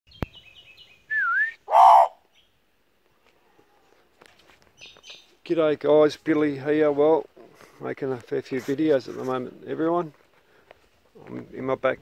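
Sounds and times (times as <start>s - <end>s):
magpie calling: 1.7s - 2.4s.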